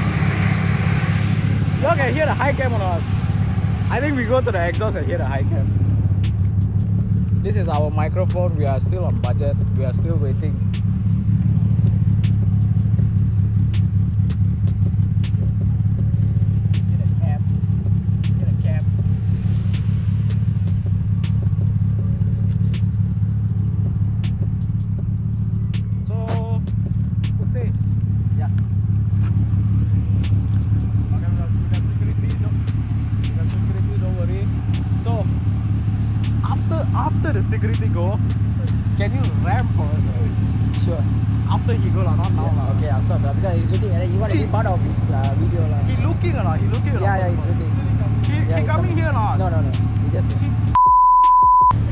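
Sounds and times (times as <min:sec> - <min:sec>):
car engine idling: 0:00.0 - 0:50.8, 0:51.7 - 0:51.9.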